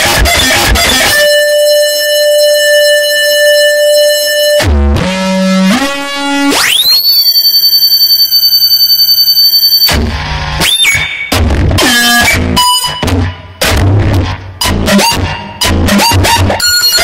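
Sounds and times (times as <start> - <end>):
electronic noise music: 0.0 - 7.8, 9.9 - 17.0.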